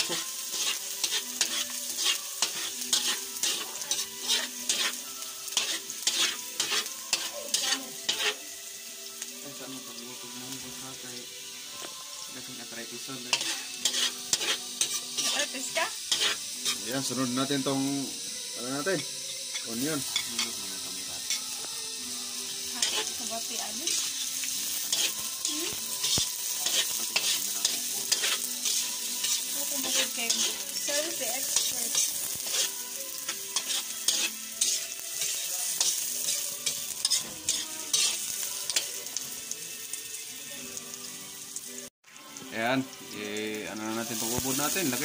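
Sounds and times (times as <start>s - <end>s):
onions sizzling in hot oil: 0.0s - 45.0s
spatula scraping and knocking pan: 13.4s - 15.4s, 16.1s - 16.8s.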